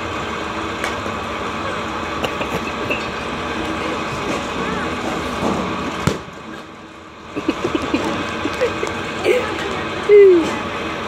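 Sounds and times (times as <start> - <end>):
outdoor background noise: 0.0 - 11.0
indistinct voices: 1.5 - 5.8, 7.4 - 11.0.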